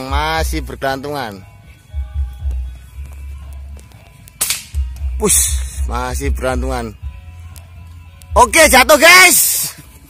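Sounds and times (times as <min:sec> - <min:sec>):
music with deep bass beat: 0:00.0 - 0:10.0
air rifle shot: 0:04.4 - 0:04.8.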